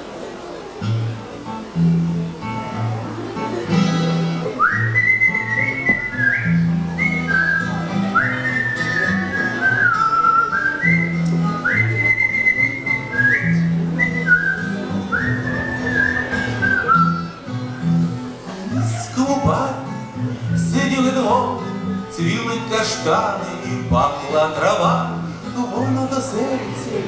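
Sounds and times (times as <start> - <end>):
strummed acoustic guitar: 0.0 - 27.0
man whistling a melody: 4.5 - 17.9.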